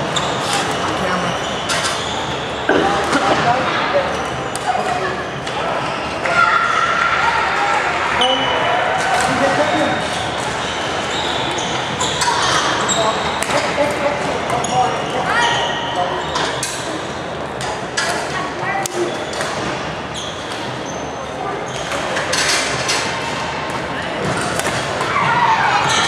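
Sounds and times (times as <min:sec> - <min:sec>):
background chatter: 0:00.0 - 0:26.0.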